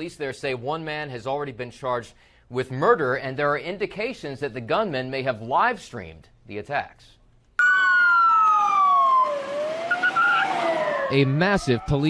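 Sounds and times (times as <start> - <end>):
police siren wailing: 7.6 - 12.0
street noise: 7.6 - 12.0.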